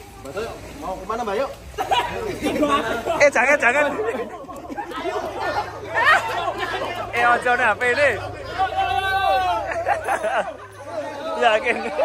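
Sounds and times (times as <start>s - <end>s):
people chattering and calling out: 0.0s - 12.0s.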